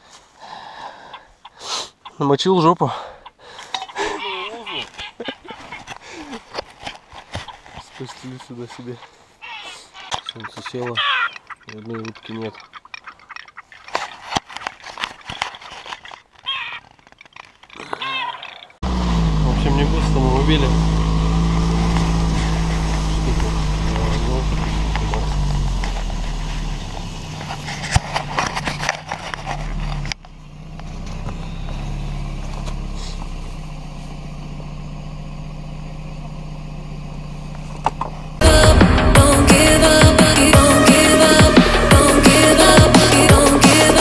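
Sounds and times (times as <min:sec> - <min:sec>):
people talking: 0:07.8 - 0:09.0, 0:10.3 - 0:11.0, 0:19.4 - 0:20.9, 0:23.1 - 0:25.5
engine running: 0:18.8 - 0:44.0.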